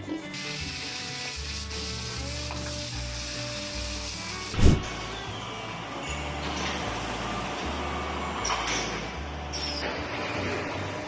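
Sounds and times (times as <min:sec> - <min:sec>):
water spraying hiss: 0:00.4 - 0:04.8
loud low thump: 0:04.6 - 0:04.9.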